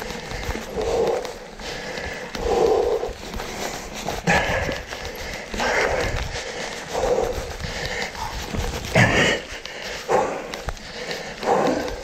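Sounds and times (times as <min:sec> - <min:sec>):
bike rumble: 0:00.0 - 0:12.0
person breathing hard: 0:00.0 - 0:12.0.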